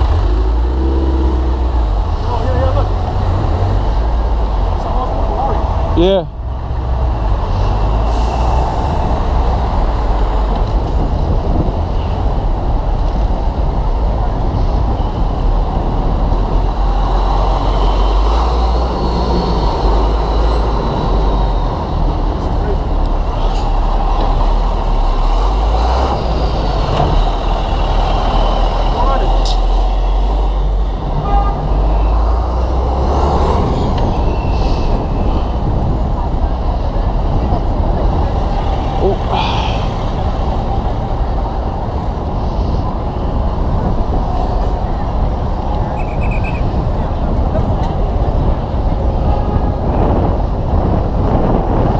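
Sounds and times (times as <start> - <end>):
dense traffic rumble: 0.0 - 51.9.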